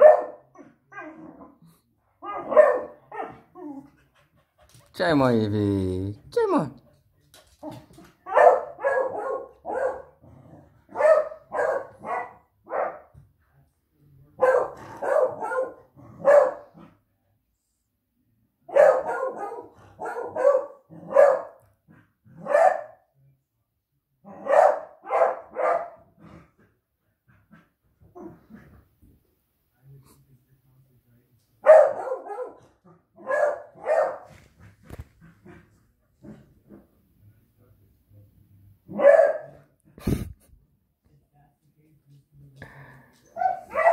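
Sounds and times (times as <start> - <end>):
dog barking: 0.0 - 0.7, 2.2 - 3.4, 8.2 - 10.2, 10.9 - 13.1, 14.4 - 16.8, 18.7 - 21.7, 22.4 - 23.1, 24.3 - 26.1, 31.6 - 34.3, 38.9 - 39.7, 43.4 - 43.9.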